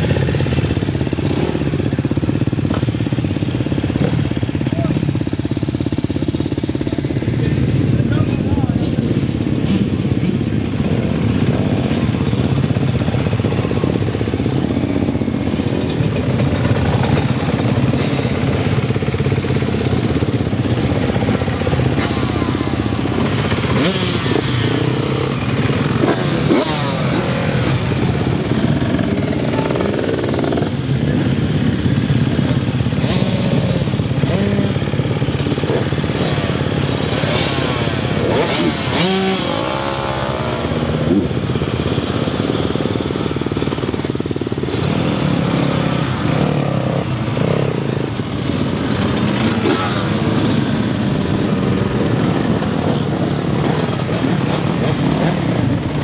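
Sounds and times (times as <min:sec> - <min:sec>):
motocross bike engines running: 0:00.0 - 0:56.0.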